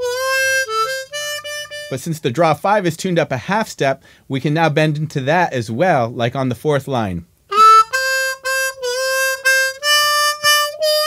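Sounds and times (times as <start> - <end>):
harmonica melody: 0.0 - 2.2, 7.5 - 11.0.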